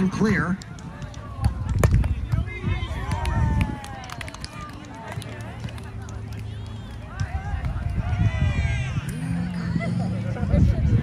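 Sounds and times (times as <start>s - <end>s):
players calling out: 0.0s - 10.5s
dull low thuds: 1.0s - 3.5s.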